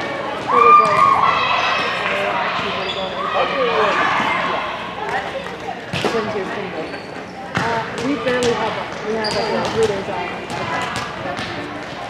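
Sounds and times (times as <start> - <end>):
voices chattering in a gym: 0.0 - 12.0.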